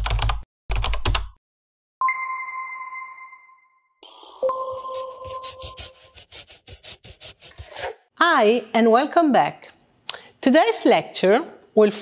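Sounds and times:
bell-like chime: 2.0 - 5.7.

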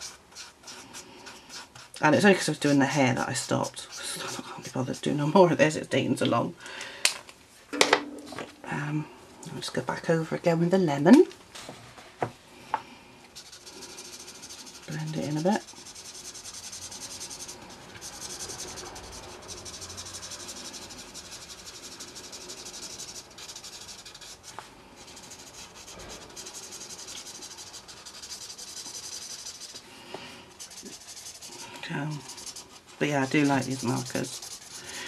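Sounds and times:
marker nib rubbing on paper: 0.0 - 5.5, 13.4 - 35.0.

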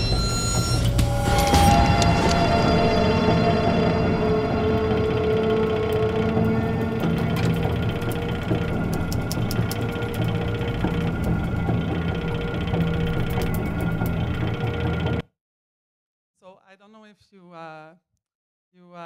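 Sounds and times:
sustained electronic tones: 0.0 - 15.2
rapid mechanical clicks: 5.5 - 15.2.

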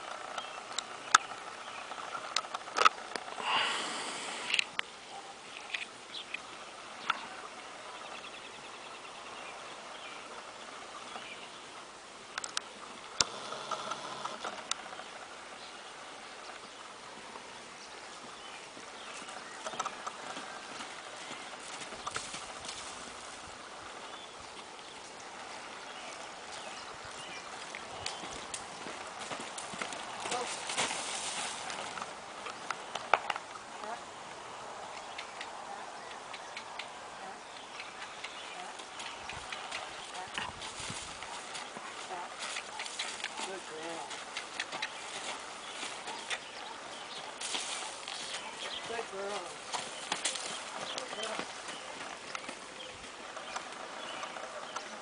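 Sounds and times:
horse hoofbeats on dirt: 18.1 - 33.5, 37.6 - 55.0.

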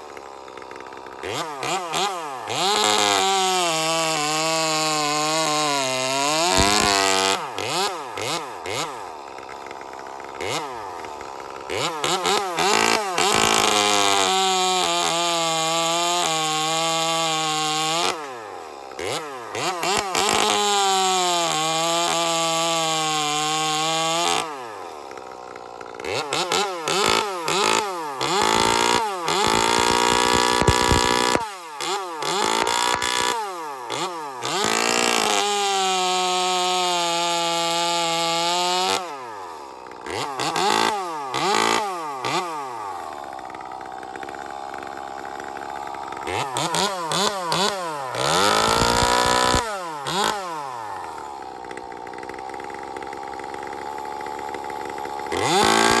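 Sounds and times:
chainsaw revving: 0.0 - 56.0.

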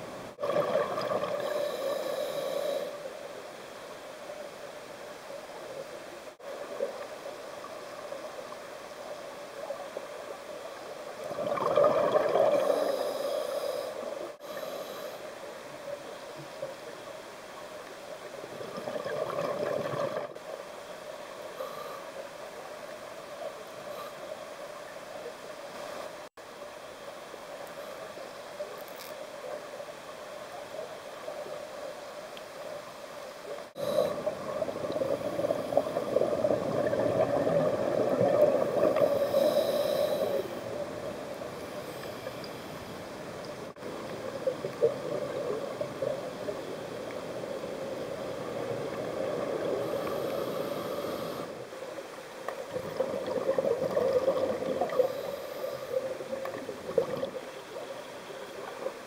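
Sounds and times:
muffled underwater rushing: 0.0 - 2.6, 11.2 - 14.4, 33.7 - 42.9.

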